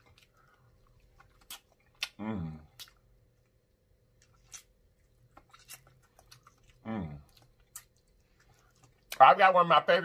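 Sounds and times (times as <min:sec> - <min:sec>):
wet chewing smacks and clicks: 0:00.0 - 0:09.3.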